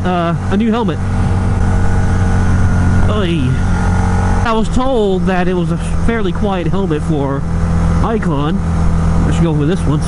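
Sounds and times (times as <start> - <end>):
motorcycle engine running: 0.0 - 10.0
road noise: 0.0 - 10.0
wind noise: 0.9 - 6.6.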